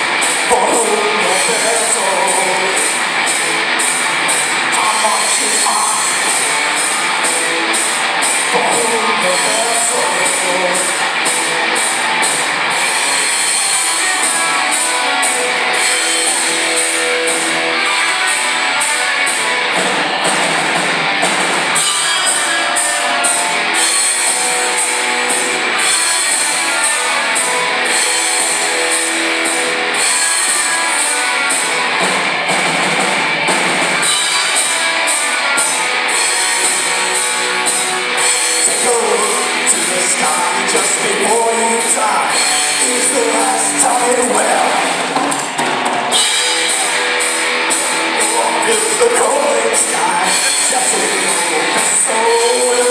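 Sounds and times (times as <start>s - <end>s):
distant live rock band: 0.0s - 52.9s.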